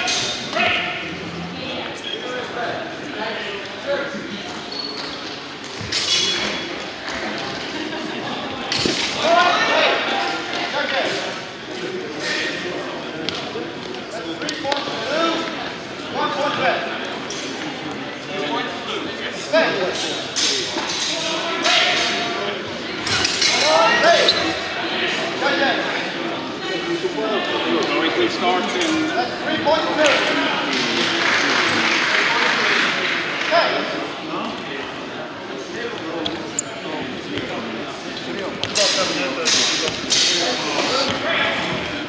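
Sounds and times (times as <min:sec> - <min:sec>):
swords clashing: 0:38.8 - 0:40.6.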